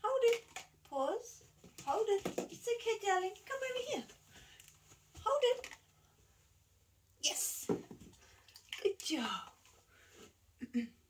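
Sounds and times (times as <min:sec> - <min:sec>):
woman talking in high voice: 0:00.0 - 0:04.2, 0:05.2 - 0:05.7, 0:07.2 - 0:07.8, 0:08.8 - 0:09.6.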